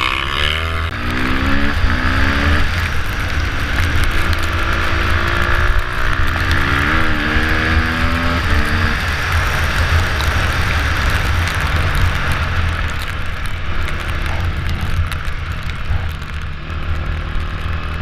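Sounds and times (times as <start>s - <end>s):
low wind rumble: 0.0s - 18.0s
motorcycle engine revving: 0.0s - 18.0s.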